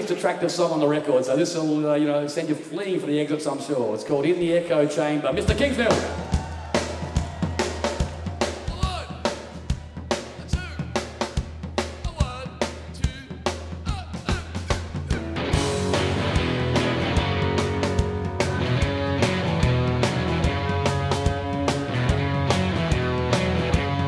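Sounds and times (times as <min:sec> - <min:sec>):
rock band with electric guitars: 0:05.3 - 0:24.0
drum kit steady beat: 0:05.4 - 0:24.0.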